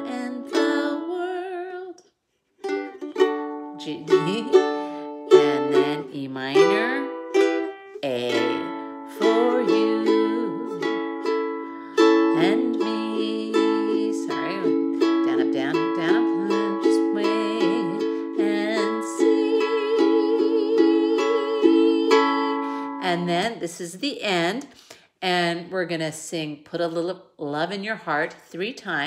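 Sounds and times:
ukulele strummed: 0:00.0 - 0:01.9, 0:02.6 - 0:23.6.

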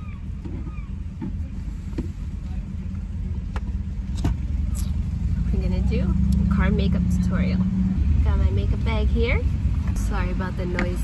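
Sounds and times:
car idling rumble: 0:00.0 - 0:11.0.

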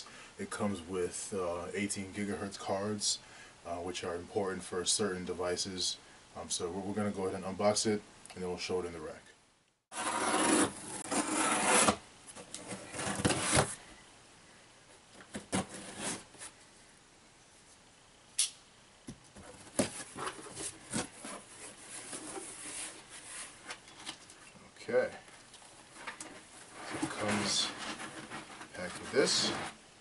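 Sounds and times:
cardboard box rustling and scraping: 0:09.9 - 0:12.0, 0:12.6 - 0:13.8, 0:15.3 - 0:16.5, 0:19.4 - 0:24.1, 0:26.0 - 0:29.8
sharp click: 0:18.4 - 0:18.6.

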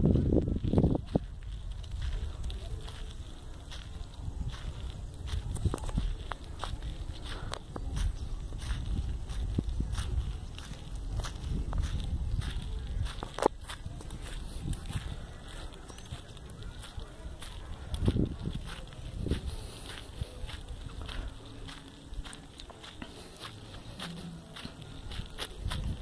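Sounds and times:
wind rumble on microphone: 0:00.0 - 0:22.4, 0:23.8 - 0:26.0
footsteps scuffing on sandy dirt: 0:00.0 - 0:26.0.

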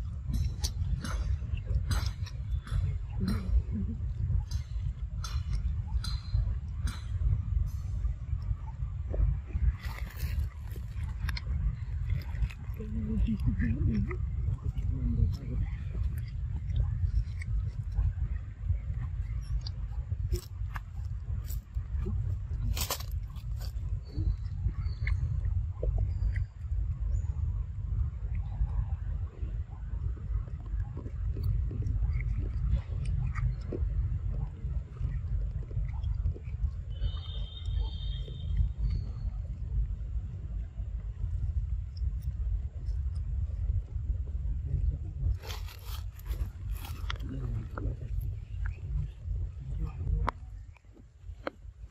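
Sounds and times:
low steady rumble: 0:00.0 - 0:51.9
monkey chewing wet smacks: 0:09.6 - 0:26.8, 0:28.2 - 0:40.0, 0:44.8 - 0:51.5.

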